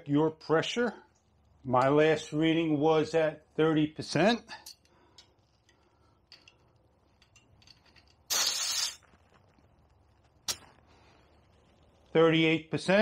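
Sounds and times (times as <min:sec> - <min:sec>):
air hissing from tyre valve: 0:08.3 - 0:09.0.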